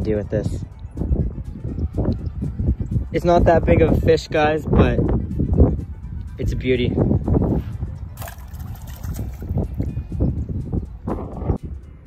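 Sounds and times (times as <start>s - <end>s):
wind buffeting microphone: 0.0s - 12.0s
fish splashing in water: 8.2s - 9.6s.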